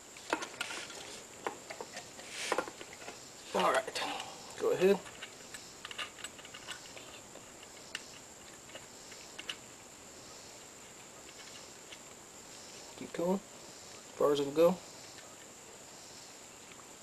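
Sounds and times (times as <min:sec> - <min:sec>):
faint high hiss: 0:00.0 - 0:17.0.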